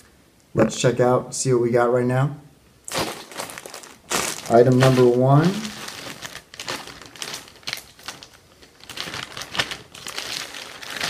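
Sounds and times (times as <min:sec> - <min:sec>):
plastic bag crinkling: 0:02.9 - 0:11.0.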